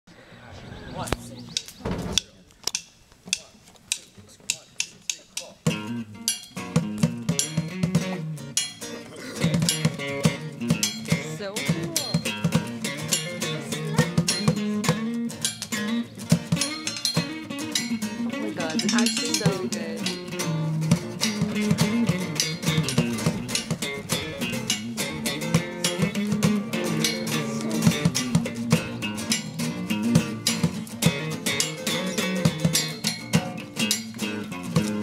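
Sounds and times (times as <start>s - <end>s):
sharp taps in a steady beat: 1.5s - 35.0s
band with guitars and saxophones: 5.5s - 35.0s.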